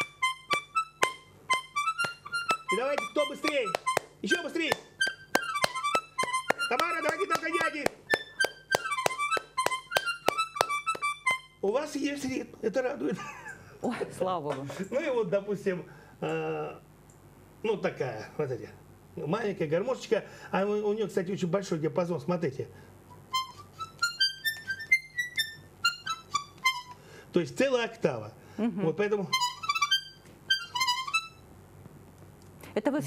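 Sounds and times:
hand claps keeping time: 0.0s - 11.6s, 23.4s - 27.0s, 29.4s - 31.4s
small button accordion dance tune: 0.0s - 11.6s, 23.3s - 27.1s, 29.0s - 31.4s.

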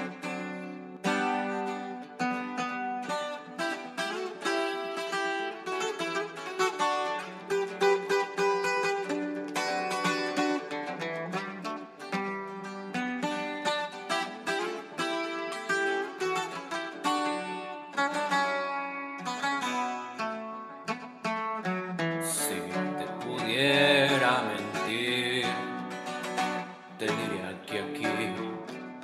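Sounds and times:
plucked string melody: 0.0s - 29.0s.

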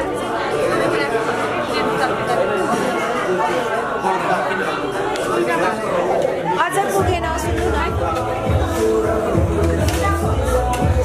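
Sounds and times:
people chatting: 0.0s - 11.0s.

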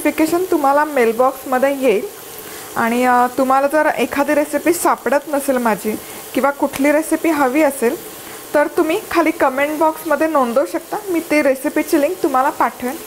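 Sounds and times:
woman talking: 0.0s - 2.1s, 2.8s - 13.0s
onions sizzling in a pan: 0.0s - 13.0s.

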